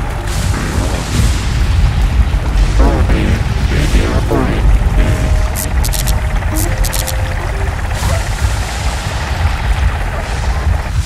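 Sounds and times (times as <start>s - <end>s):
music: 0.0s - 8.9s.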